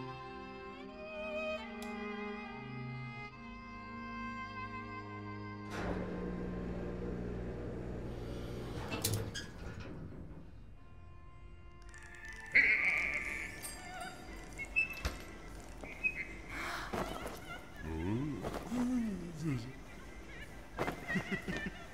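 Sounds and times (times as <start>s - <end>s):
film score sustained tones: 10.6s - 21.9s.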